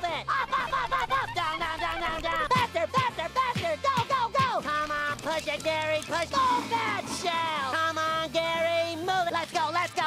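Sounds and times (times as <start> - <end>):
voice-like pitched notes: 4.7 - 9.4.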